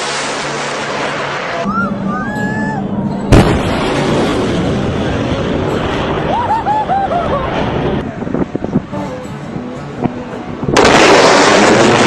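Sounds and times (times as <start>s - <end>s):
jet engine noise: 0.0s - 9.0s
spectators whooping: 1.5s - 2.9s
sonic boom crack: 3.3s - 6.4s.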